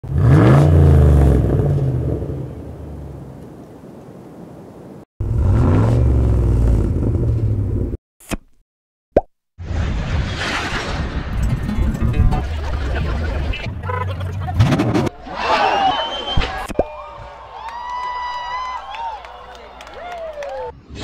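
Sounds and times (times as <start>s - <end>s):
car engine revving: 0.0s - 3.2s, 5.2s - 8.0s.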